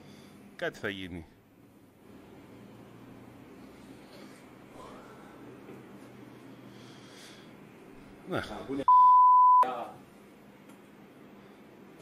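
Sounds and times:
high-pitched censor bleep: 8.9s - 9.7s.

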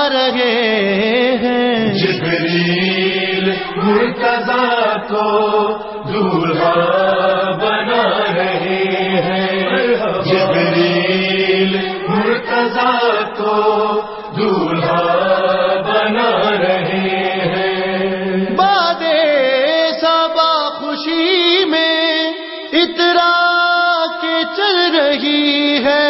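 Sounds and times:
higher voice ornamented singing: 0.0s - 26.0s
voices chanting: 1.7s - 18.8s.

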